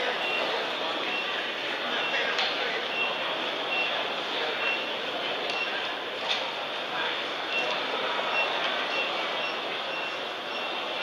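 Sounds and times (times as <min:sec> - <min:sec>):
crowd noise in large hall: 0:00.0 - 0:11.0.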